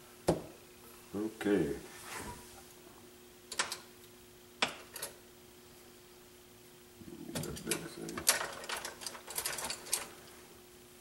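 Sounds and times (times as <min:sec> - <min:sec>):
hard objects clicking and clattering: 0:07.4 - 0:10.1.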